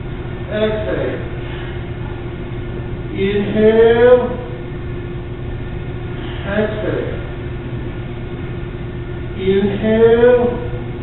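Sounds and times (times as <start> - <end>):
faint constant hum: 0.0 - 11.0
low room rumble: 0.0 - 11.0.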